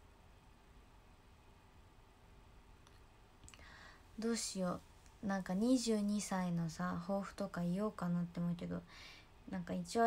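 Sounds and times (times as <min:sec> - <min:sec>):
soft hiss: 0:00.0 - 0:10.0
faint small clicks: 0:02.8 - 0:03.7.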